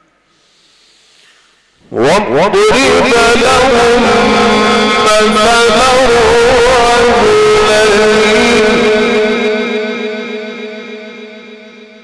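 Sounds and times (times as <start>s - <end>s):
man reciting with heavy echo: 1.8s - 12.0s.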